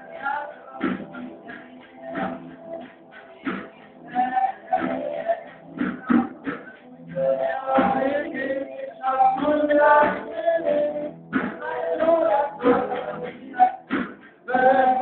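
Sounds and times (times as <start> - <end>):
boy singing into microphone: 0.0 - 15.0
drum kit: 0.0 - 15.0.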